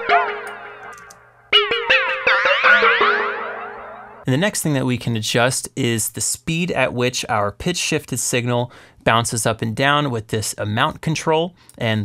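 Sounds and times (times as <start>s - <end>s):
synth pluck notes with flanged echo: 0.0s - 4.3s.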